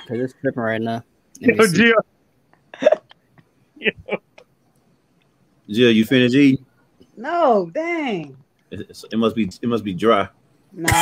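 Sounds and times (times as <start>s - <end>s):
person's voice over video call: 1.4s - 2.0s.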